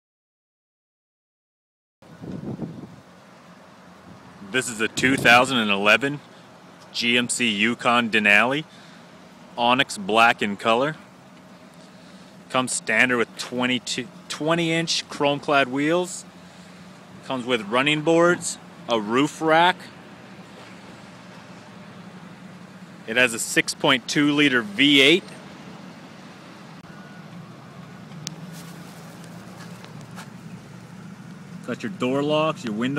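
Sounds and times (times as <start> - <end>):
outdoor background noise: 2.0 - 32.9
vehicle engine idling: 2.0 - 32.9
wind on microphone: 2.2 - 3.0.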